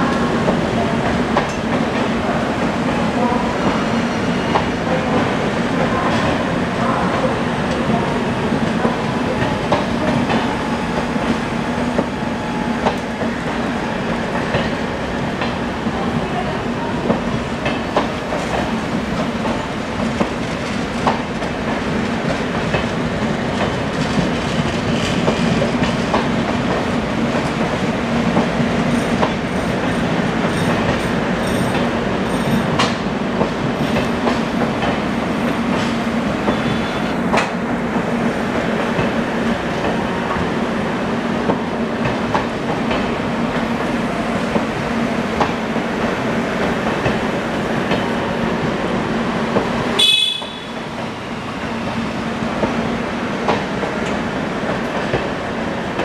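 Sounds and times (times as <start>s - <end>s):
train rumble: 0.0s - 56.0s
train wheels clicking over rail joints: 17.1s - 39.2s.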